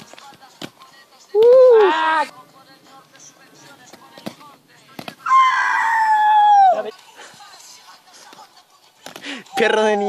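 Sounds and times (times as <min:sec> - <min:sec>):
hands and feet slapping asphalt: 0:00.0 - 0:07.6, 0:08.2 - 0:09.6.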